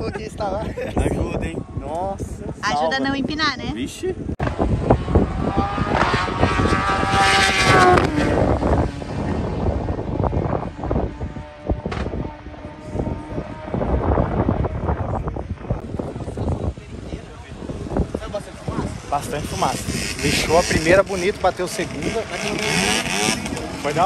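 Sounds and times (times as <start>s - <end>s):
motorcycle engine at full throttle: 3.9s - 24.0s.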